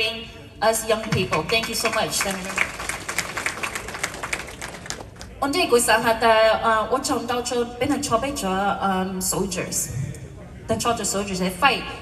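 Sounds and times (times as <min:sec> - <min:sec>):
crowd applauding: 0:01.2 - 0:05.4.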